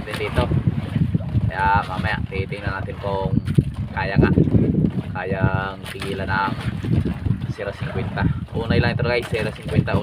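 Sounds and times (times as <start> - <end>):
man talking: 0.0 - 0.6, 1.4 - 4.4, 5.2 - 6.6, 7.5 - 10.0
boat low rumble: 0.0 - 10.0
wind on microphone: 0.0 - 10.0.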